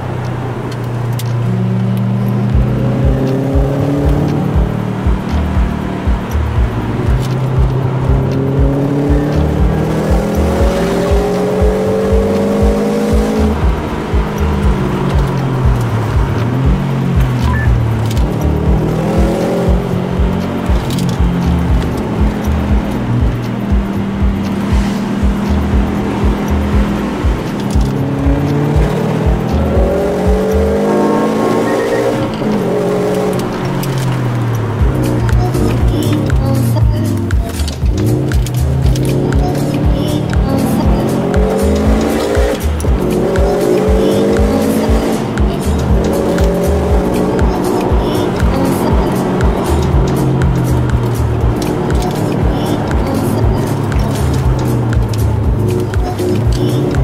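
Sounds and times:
background music with steady beat: 0.0s - 57.0s
car engine revving: 0.0s - 57.0s.

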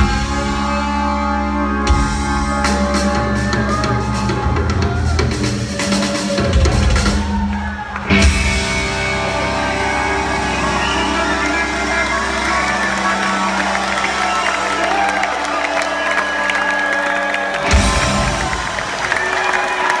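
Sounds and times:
audience cheering: 2.5s - 20.0s.

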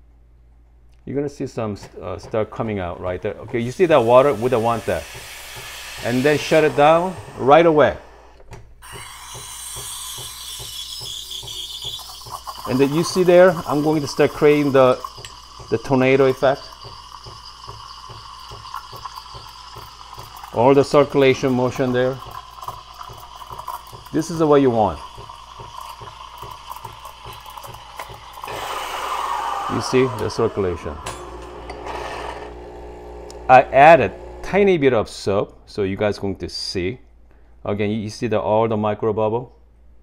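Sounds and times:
steam wand hissing: 3.6s - 23.6s, 24.2s - 32.6s.

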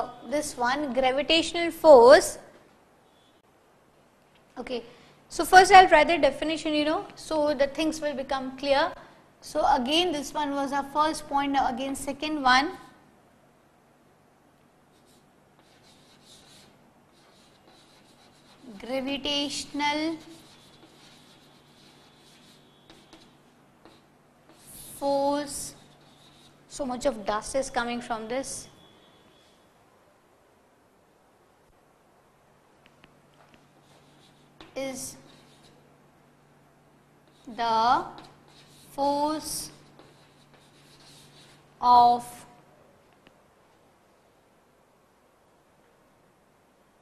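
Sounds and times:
steady low hum: 2.6s - 47.0s
chalk writing on a blackboard: 14.9s - 18.9s, 19.5s - 26.8s, 33.6s - 35.8s, 37.2s - 41.7s
person speaking: 14.9s - 28.8s, 33.8s - 35.8s, 37.3s - 42.6s.

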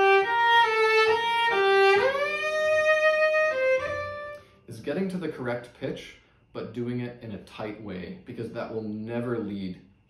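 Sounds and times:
bowed cello notes: 0.0s - 4.8s.

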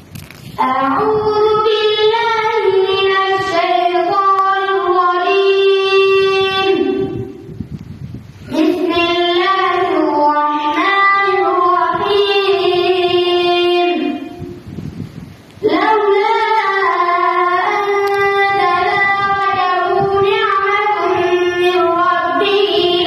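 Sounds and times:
boy chanting into microphone: 0.6s - 7.6s, 8.4s - 14.7s, 15.6s - 23.0s.

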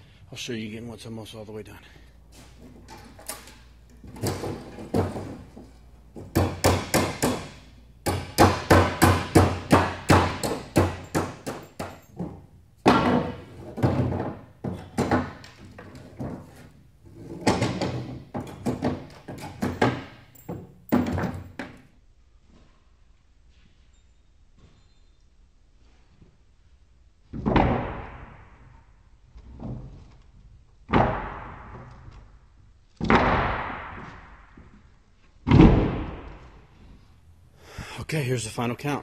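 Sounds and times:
hammer knocking on wooden boards: 6.2s - 16.6s, 17.4s - 21.8s.

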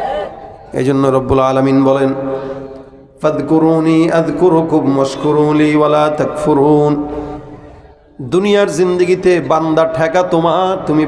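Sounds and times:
man chanting through loudspeakers: 0.6s - 11.0s.

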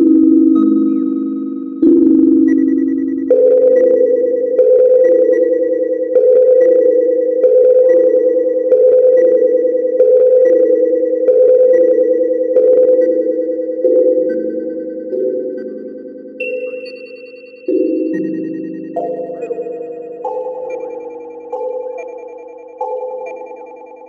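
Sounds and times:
pulsing electronic loop: 0.0s - 24.0s
thin steady high tone: 13.0s - 24.0s.

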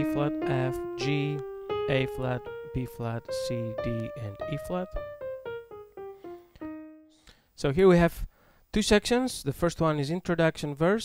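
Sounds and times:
piano playing descending scale: 0.0s - 7.2s.

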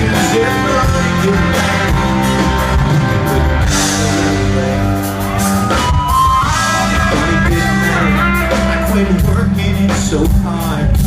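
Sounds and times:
guitars strummed: 0.0s - 11.0s
live country band playing: 0.0s - 11.0s.

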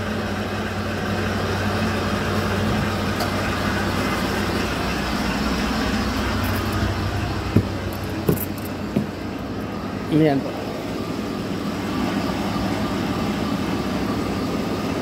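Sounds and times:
truck engine idling: 0.0s - 15.0s.

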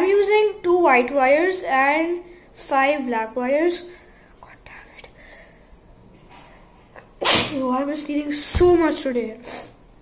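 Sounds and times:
faint breathing: 5.1s - 5.8s.

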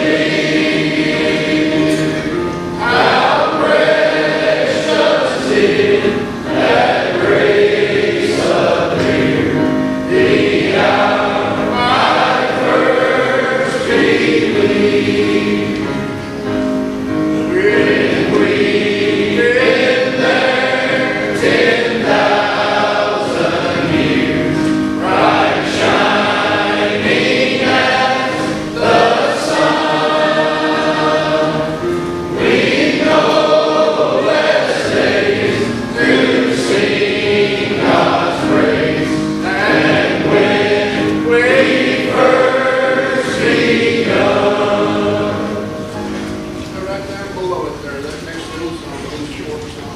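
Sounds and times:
choir singing in harmony: 0.0s - 46.9s.

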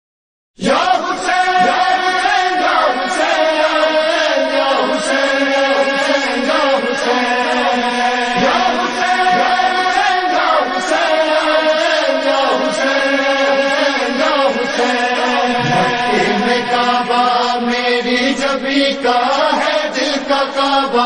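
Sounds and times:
chorus chanting held notes: 0.6s - 21.0s.

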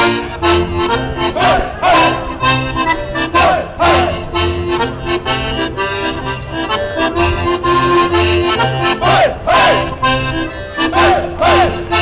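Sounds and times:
accordion folk dance music: 0.0s - 12.0s
dancers shouting: 9.0s - 9.9s, 11.0s - 11.9s.

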